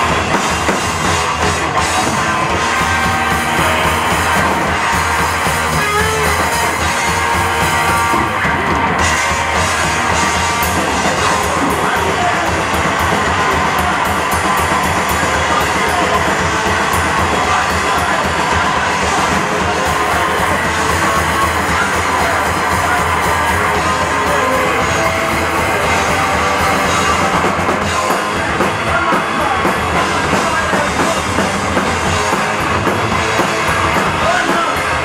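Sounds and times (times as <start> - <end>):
drum kit: 0.0 - 35.0
electric guitar: 0.0 - 35.0.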